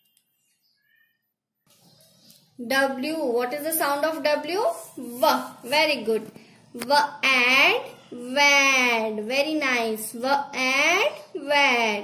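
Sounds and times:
faint high chirp: 0.0s - 2.6s.

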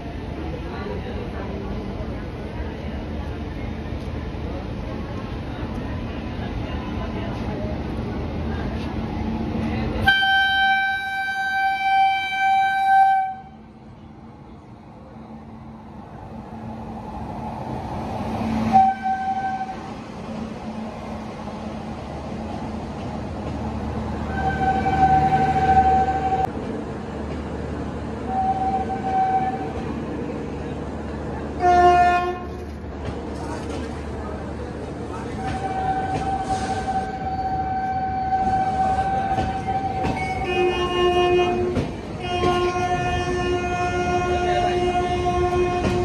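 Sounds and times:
train coaches rumbling past: 0.0s - 46.0s
locomotive horn blasts: 10.0s - 13.6s, 18.7s - 19.8s, 24.3s - 26.4s, 31.6s - 32.5s, 38.2s - 46.0s.

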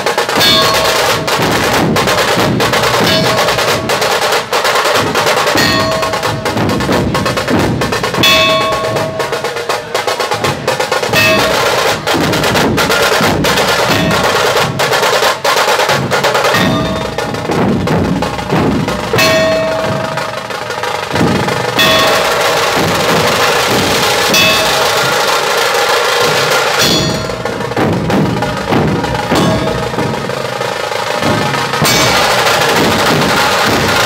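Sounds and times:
large barrel drums: 0.0s - 34.0s
rapid kettle drum strokes: 0.0s - 34.0s.

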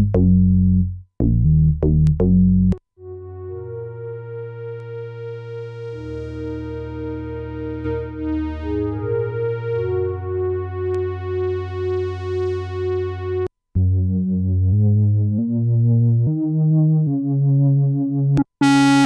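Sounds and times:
synthesizer chords with pulsing wobble: 3.0s - 10.9s, 13.8s - 19.0s.

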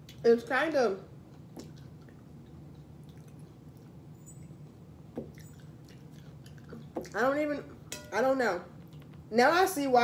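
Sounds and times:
low steady hum: 0.0s - 10.0s
wet chewing and mouth sounds: 1.2s - 7.2s, 8.8s - 9.2s.

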